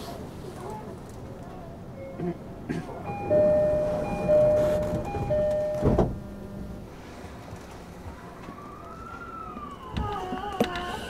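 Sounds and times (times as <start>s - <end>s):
train doors thumping shut: 3.0s - 6.3s
two-note door chime: 3.1s - 6.0s.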